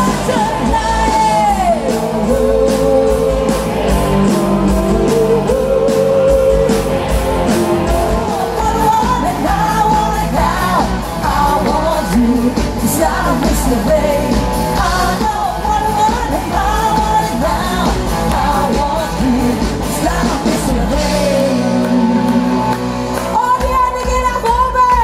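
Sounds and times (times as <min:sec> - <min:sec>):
live rock band playing: 0:00.0 - 0:25.0
person singing: 0:00.0 - 0:25.0.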